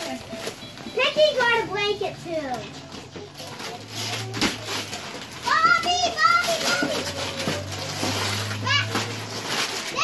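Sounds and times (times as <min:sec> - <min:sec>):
wrapping paper rustling and tearing: 0:00.0 - 0:10.0.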